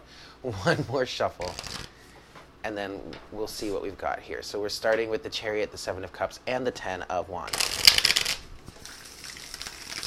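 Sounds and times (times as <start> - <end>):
cards being shuffled: 1.4 - 2.0, 7.5 - 10.0
faint paper rustling: 1.4 - 2.4.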